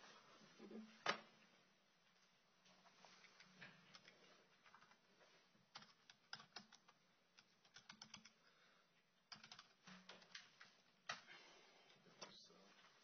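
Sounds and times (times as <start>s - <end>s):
typing on a keyboard: 3.9s - 5.0s, 5.7s - 8.4s, 9.3s - 11.2s.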